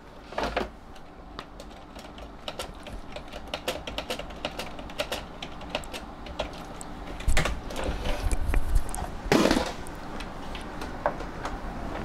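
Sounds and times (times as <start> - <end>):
keyboard typing clicks: 1.4 - 7.6.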